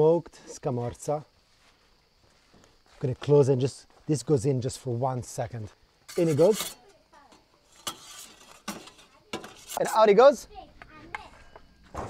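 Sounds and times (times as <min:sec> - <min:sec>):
metal pizza peel clinking: 0:06.1 - 0:06.9, 0:07.7 - 0:09.8.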